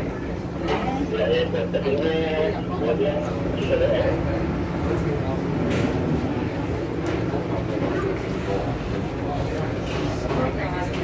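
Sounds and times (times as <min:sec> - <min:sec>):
low train hum: 0:00.0 - 0:11.0
passengers chatting: 0:00.0 - 0:11.0
train wheels rumbling on rail: 0:03.3 - 0:11.0.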